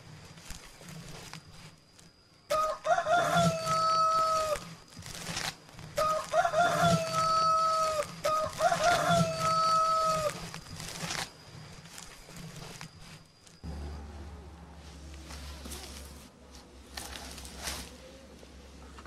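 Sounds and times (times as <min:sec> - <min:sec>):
rooster crowing: 0:02.5 - 0:04.8, 0:06.0 - 0:10.6.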